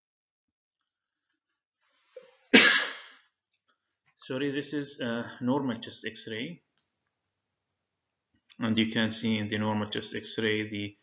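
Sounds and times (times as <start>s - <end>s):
sharp cough: 2.5s - 3.2s.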